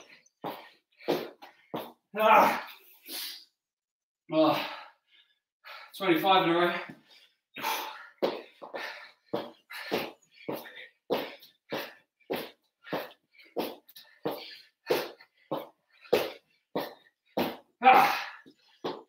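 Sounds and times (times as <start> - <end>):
man breathing hard: 0.0 - 2.0, 4.4 - 6.0, 6.6 - 19.0.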